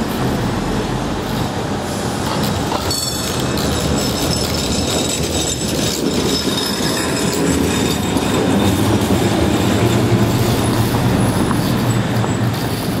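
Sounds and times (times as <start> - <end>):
tram rumbling on rails: 0.0 - 13.0
high wheel squeaks: 2.4 - 13.0.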